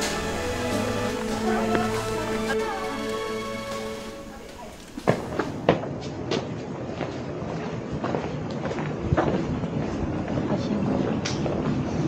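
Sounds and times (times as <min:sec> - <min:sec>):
footsteps on hard path: 0:00.0 - 0:10.4.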